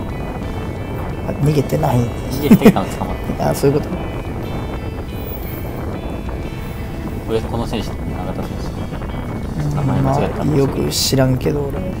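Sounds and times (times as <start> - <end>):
background music: 0.0 - 12.0
wind rumble on microphone: 0.0 - 12.0.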